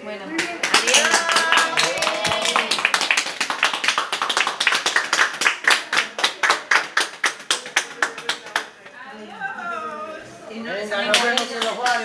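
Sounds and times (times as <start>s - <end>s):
people clapping: 0.3s - 9.0s, 11.0s - 12.0s.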